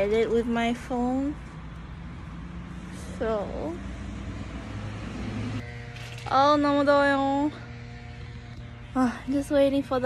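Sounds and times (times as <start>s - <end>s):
traffic engine rumble: 0.0s - 10.0s.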